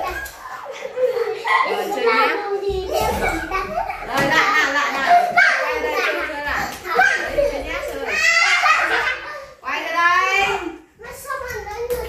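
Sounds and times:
children chattering and shouting: 0:00.0 - 0:12.0.

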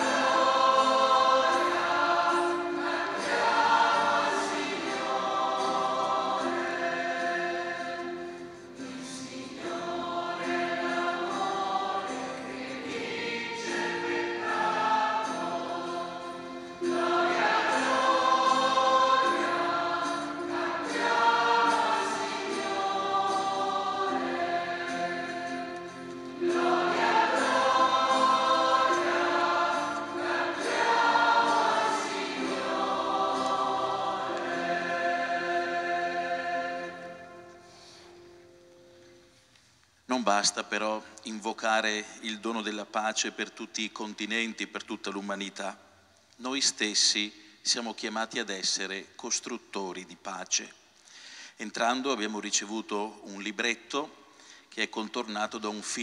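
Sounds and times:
church choir singing a hymn: 0:00.0 - 0:38.5.

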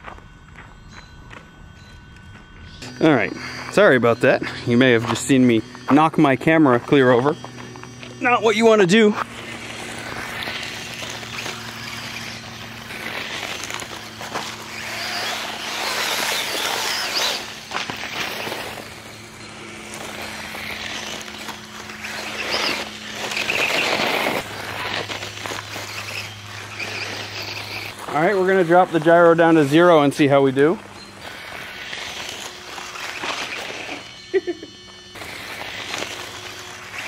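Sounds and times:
faint electric motor hum: 0:00.0 - 0:37.0
tyres scrabbling over gravel: 0:06.8 - 0:34.2, 0:35.1 - 0:37.0.

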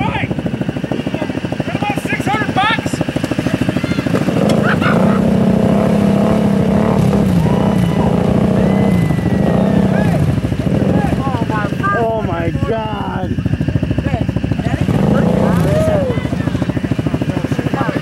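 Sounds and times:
atv engine running: 0:00.0 - 0:18.0
voices calling out: 0:00.0 - 0:18.0.

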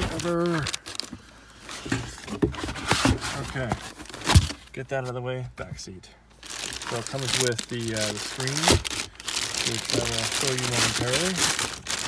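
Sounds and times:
cardboard and plastic packaging rustling: 0:00.0 - 0:04.8, 0:06.4 - 0:12.0.

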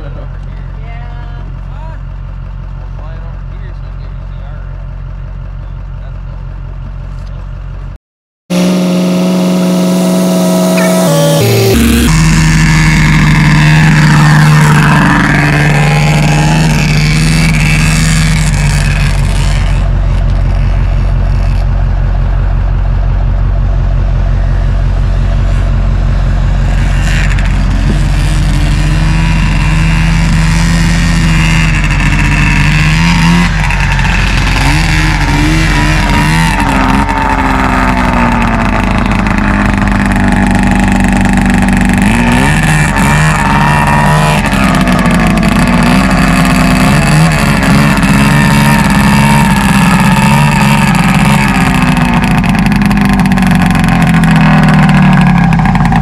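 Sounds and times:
snowmobile engines revving: 0:08.5 - 0:56.0.

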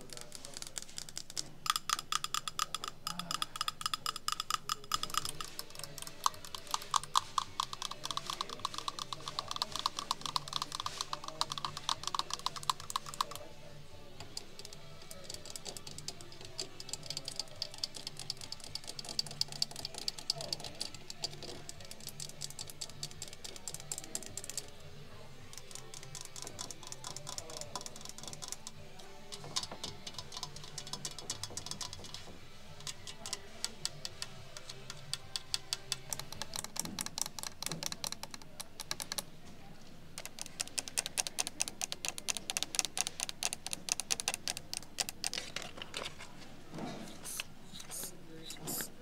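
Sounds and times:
fingernails tapping on metal: 0:00.0 - 0:13.5, 0:14.2 - 0:24.9, 0:25.5 - 0:39.3, 0:40.2 - 0:46.3
nails scratching on clock cases: 0:00.0 - 0:13.6, 0:14.2 - 0:39.3, 0:40.1 - 0:49.0.

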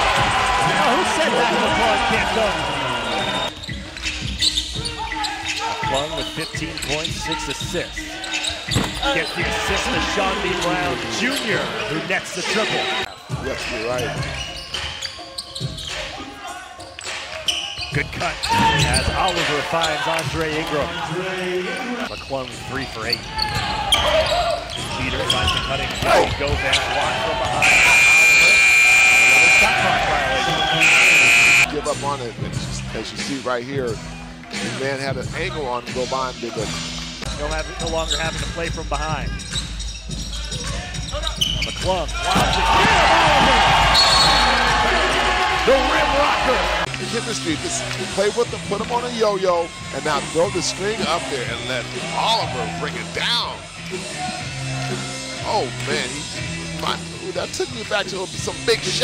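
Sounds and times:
voices in large hall: 0:00.0 - 0:59.0.

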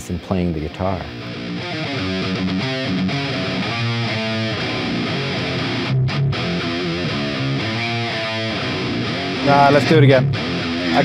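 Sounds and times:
distorted electric guitar riff: 0:00.0 - 0:11.0.

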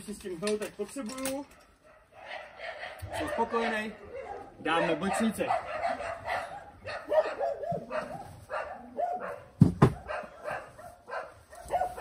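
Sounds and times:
dogs barking in short yaps: 0:01.6 - 0:12.0
loud thumps: 0:09.6 - 0:10.1.

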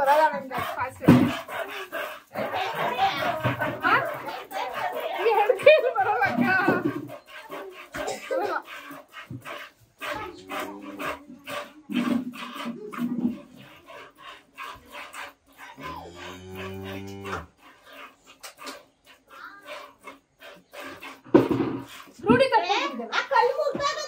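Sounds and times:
cow lowing: 0:00.1 - 0:22.2.

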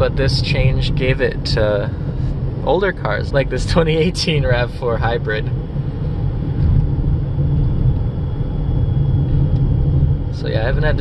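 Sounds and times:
road and tyre rumble in car: 0:00.0 - 0:11.0.

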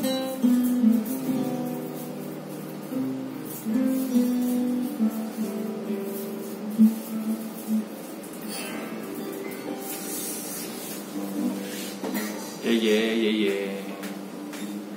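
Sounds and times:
acoustic guitar fingerstyle: 0:00.0 - 0:14.9.

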